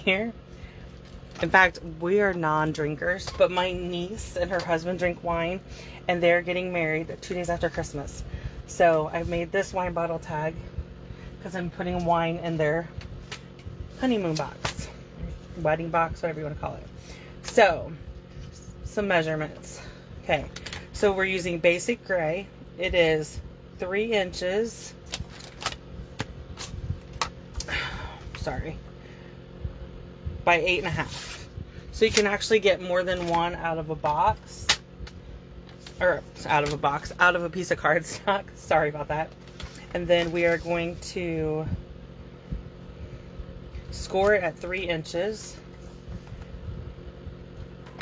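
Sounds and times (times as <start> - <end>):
steady low hum: 0.0 - 48.0
card sliding rustle: 31.0 - 31.5.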